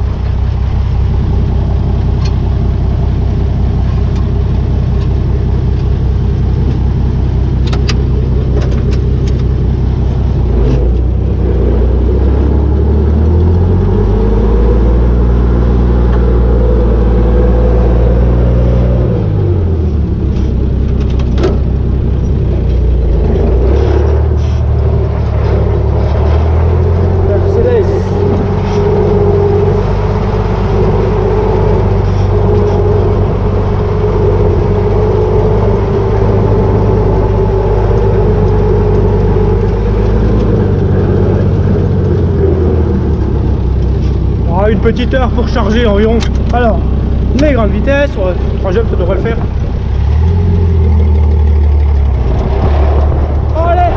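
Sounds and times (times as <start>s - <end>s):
tractor engine running under load: 0.0s - 53.9s.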